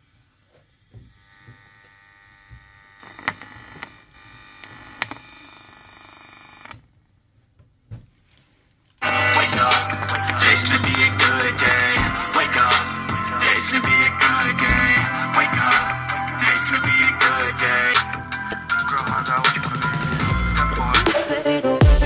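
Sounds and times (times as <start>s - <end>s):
faint music from loudspeaker: 9.0s - 22.0s
loud rap music: 9.0s - 22.0s.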